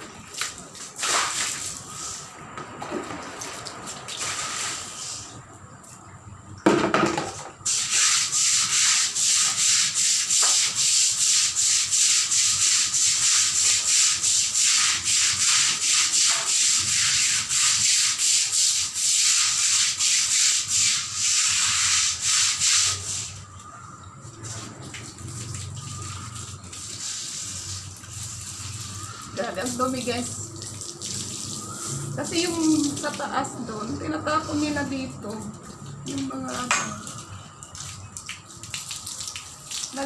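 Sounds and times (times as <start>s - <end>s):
brush scrubbing wet tiled floor: 7.6s - 38.4s.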